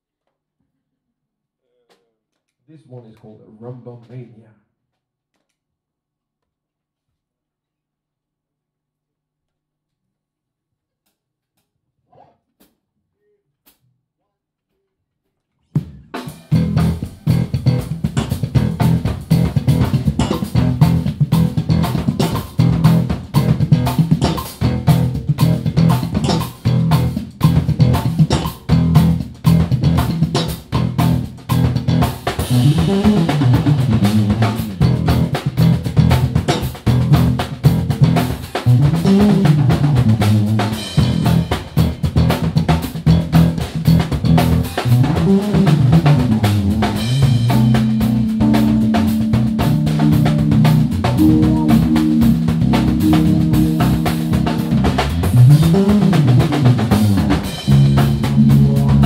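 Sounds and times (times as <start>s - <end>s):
driving drums: 15.7s - 59.0s
low bass lines: 16.5s - 59.0s
melodic bass runs: 16.6s - 59.0s.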